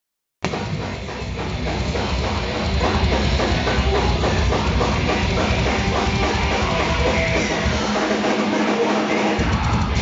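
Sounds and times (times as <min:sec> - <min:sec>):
heavy metal band playing live: 0:00.4 - 0:10.0.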